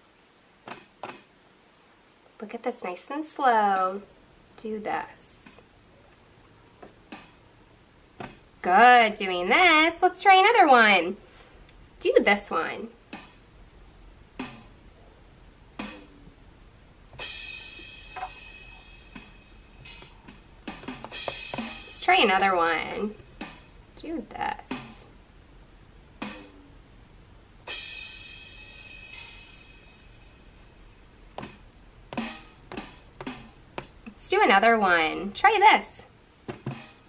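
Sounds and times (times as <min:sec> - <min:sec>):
drum hits from drum-pad app: 0:14.4 - 0:14.8, 0:15.8 - 0:16.2, 0:19.1 - 0:22.0, 0:26.2 - 0:26.6, 0:31.4 - 0:34.0, 0:36.5 - 0:37.0.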